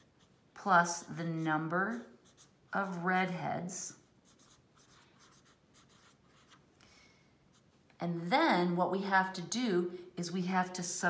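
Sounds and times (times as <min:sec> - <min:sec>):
felt-tip pen scratching on paper: 0:00.0 - 0:00.4, 0:01.1 - 0:03.0, 0:04.2 - 0:06.6.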